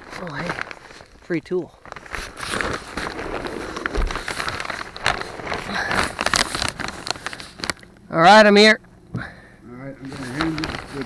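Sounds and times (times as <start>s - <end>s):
rustling and crinkling: 0.0s - 8.1s, 10.0s - 11.0s.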